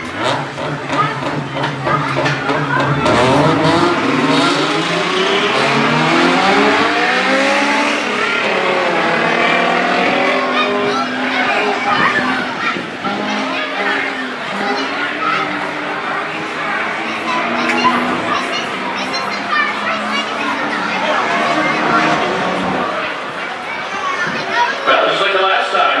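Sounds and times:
race car engines at full throttle: 0.0s - 26.0s.

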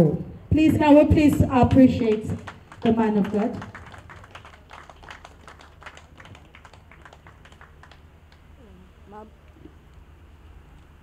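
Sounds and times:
audience clapping: 1.3s - 8.5s.

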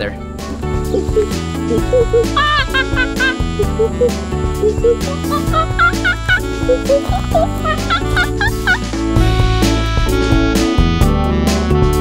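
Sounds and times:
background music: 0.0s - 12.0s
man imitating monkey hoots: 0.9s - 8.8s
man laughing: 1.0s - 4.2s, 4.8s - 9.0s.

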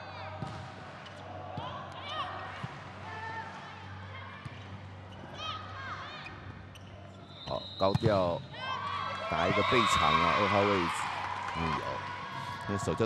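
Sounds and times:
sneakers squeaking on gym floor: 6.2s - 8.2s.

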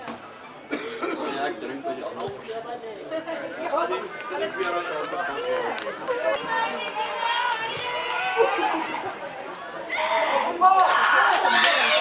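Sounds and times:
spectators chattering and calling out: 0.0s - 12.0s.

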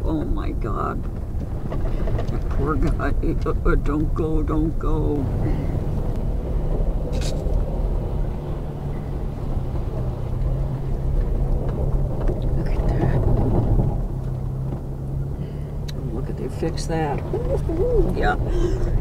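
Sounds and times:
vehicle engine hum: 0.0s - 19.0s.

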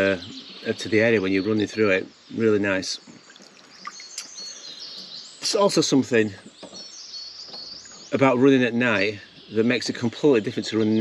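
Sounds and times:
birds chirping and whistling: 0.0s - 11.0s
water lapping and dripping: 3.0s - 5.2s.

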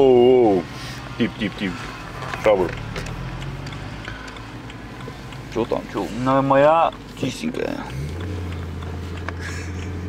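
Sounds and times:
car engine running steadily: 0.0s - 10.0s
road noise: 0.0s - 10.0s.

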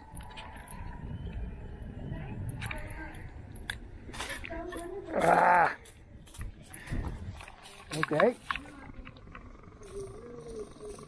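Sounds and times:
wind rumbling on microphone: 0.0s - 11.0s
clicks and rustles of handling: 2.5s - 11.0s.

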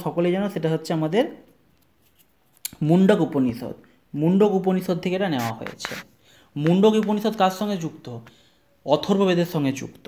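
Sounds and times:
person talking: 2.6s - 10.0s.

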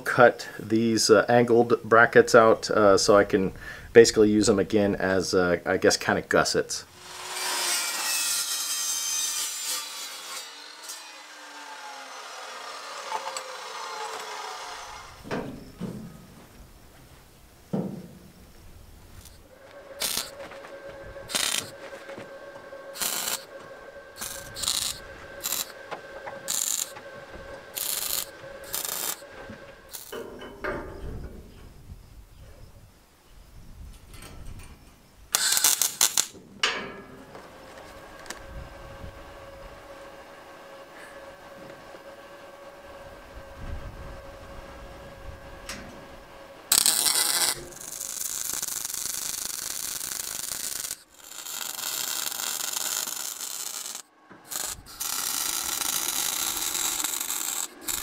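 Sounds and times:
welder arcs: 6.9s - 15.3s, 19.1s - 20.6s, 21.3s - 22.2s, 22.9s - 23.5s, 24.2s - 27.0s, 27.7s - 29.2s, 29.8s - 30.3s, 35.3s - 36.4s, 46.7s - 58.0s
saw blade spinning down whine: 6.9s - 15.7s, 19.2s - 30.2s, 37.4s - 58.0s
chop saw cutting steel: 7.0s - 15.3s, 19.2s - 20.7s, 21.3s - 22.3s, 22.9s - 23.5s, 24.2s - 27.1s, 27.7s - 30.2s, 35.4s - 36.4s, 46.7s - 58.0s
steady hum: 8.9s - 32.0s, 35.1s - 58.0s.

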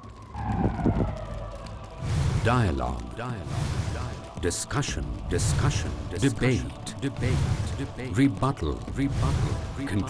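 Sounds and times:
downward gliding tone: 0.0s - 3.1s
low rumble: 0.0s - 10.0s.

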